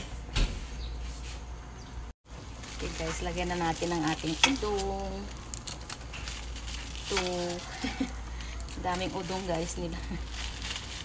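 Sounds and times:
noodle packet crinkling: 2.5 - 11.0.

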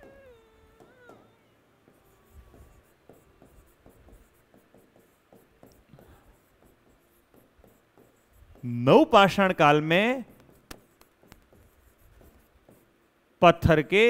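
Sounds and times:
marker scratching on whiteboard: 0.0 - 14.0.

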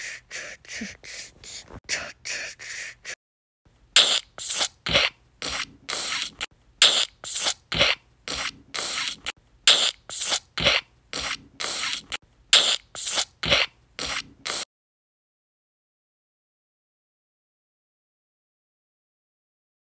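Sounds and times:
short scratchy hissing strokes: 4.0 - 14.7.

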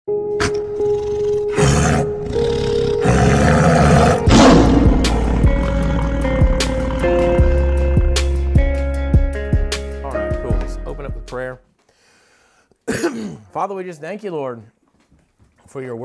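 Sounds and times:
lion roar sound effect: 1.5 - 8.2
held tones with swells: 4.3 - 7.7
beat of clicks and low hits: 4.3 - 8.3.

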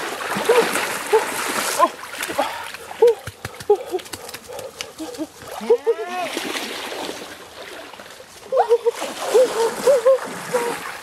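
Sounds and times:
water splashing from wading: 0.0 - 3.9, 5.5 - 11.0.

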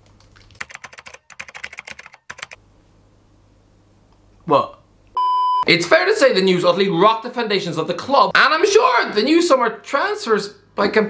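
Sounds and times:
fast typing on laptop keyboard: 0.0 - 2.6.

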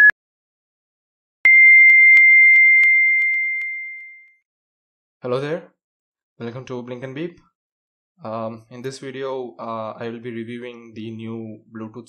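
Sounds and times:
long high electronic beep: 1.5 - 4.4.

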